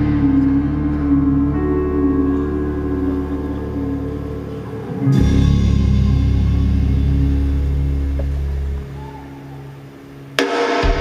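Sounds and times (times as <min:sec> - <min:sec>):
live band bass drone: 0:00.0 - 0:11.0.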